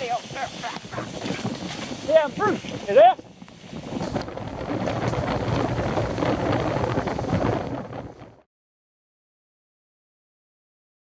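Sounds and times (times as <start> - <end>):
bike tyres rattling on dirt: 0.0 - 8.4
wind buffeting microphone: 0.0 - 8.5.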